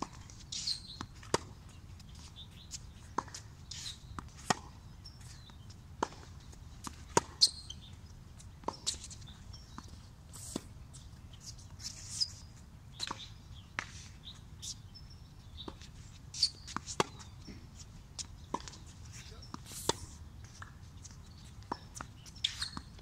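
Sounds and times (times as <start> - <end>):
tennis ball bouncing on hard court: 3.2 - 3.4, 6.0 - 7.6, 15.7 - 17.6, 18.2 - 18.8
tennis ball struck by racquets: 16.6 - 17.6.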